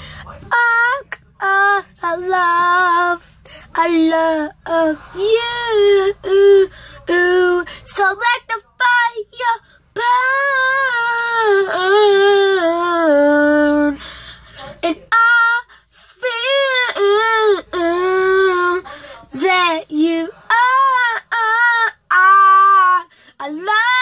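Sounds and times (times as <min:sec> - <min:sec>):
boy singing wordless notes: 0:00.0 - 0:24.0.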